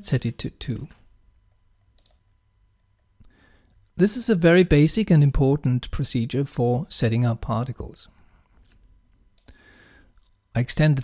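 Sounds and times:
computer mouse click: 1.6 - 2.2.

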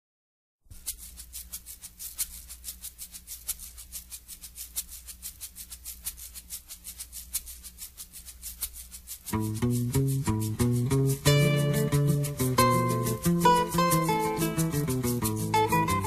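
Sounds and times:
shaker percussion rhythm: 0.7 - 16.0.

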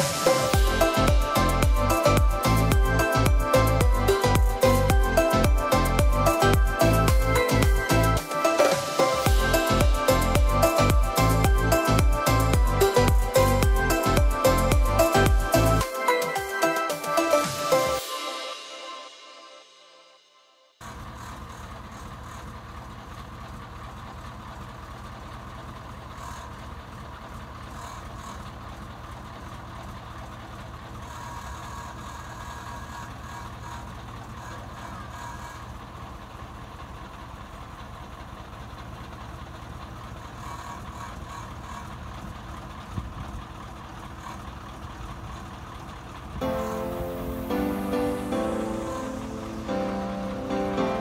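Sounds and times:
diesel truck engine running: 0.0 - 19.3, 20.8 - 51.0.

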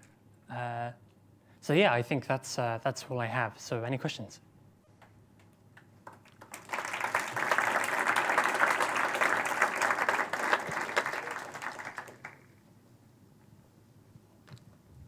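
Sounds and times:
audience applauding: 6.0 - 12.6.

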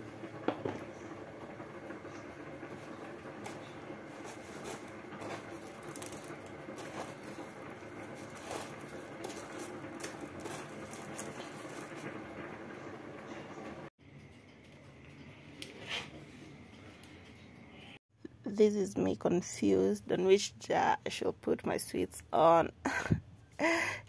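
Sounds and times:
crackling and rustling of flakes: 1.3 - 13.8.

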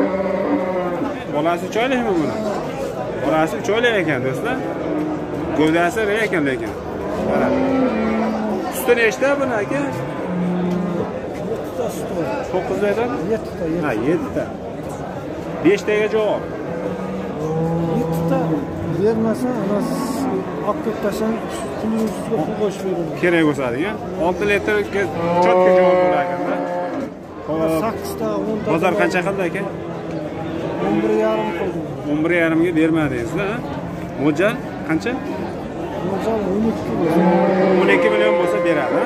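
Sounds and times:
calf mooing: 0.0 - 1.1, 7.0 - 8.8, 9.8 - 11.1, 16.6 - 20.5, 25.1 - 27.1, 37.0 - 39.0.

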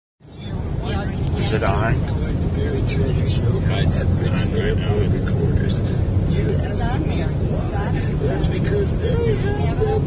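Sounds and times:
car cabin road rumble: 0.2 - 10.0.

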